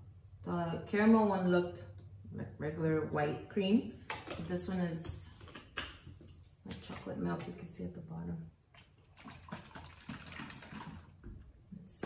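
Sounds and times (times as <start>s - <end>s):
liquid sloshing in plastic bottle: 8.7s - 11.5s.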